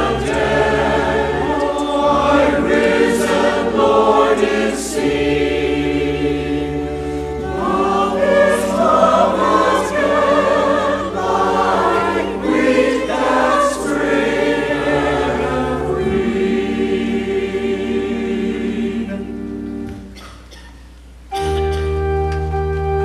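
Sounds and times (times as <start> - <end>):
church choir singing: 0.0 - 20.0
pipe organ: 0.0 - 20.3, 20.9 - 23.0.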